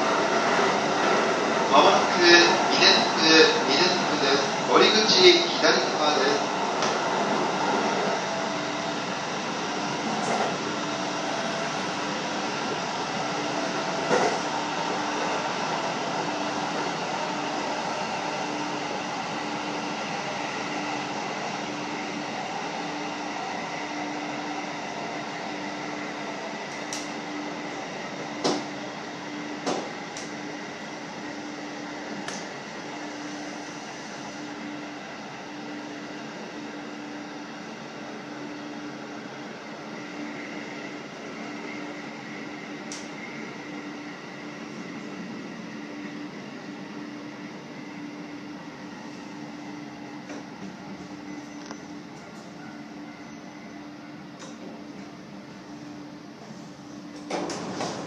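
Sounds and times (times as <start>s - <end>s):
train interior running noise: 0.0s - 58.0s.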